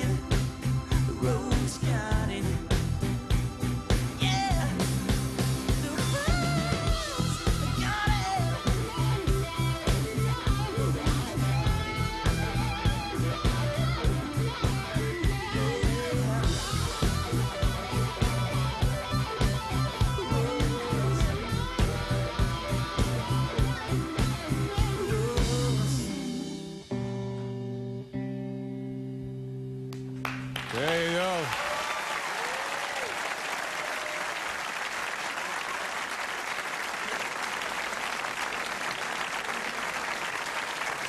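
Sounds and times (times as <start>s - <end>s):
steady drums: 0.0s - 26.8s
bass guitar: 0.0s - 31.3s
electric guitar lead bending notes: 6.2s - 30.6s.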